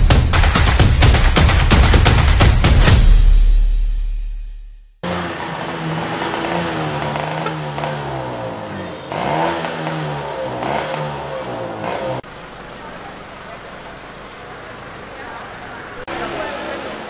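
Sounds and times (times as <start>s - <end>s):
motorcycle engines: 5.0s - 17.0s
steady background noise: 5.0s - 17.0s
people's voices: 5.1s - 17.0s.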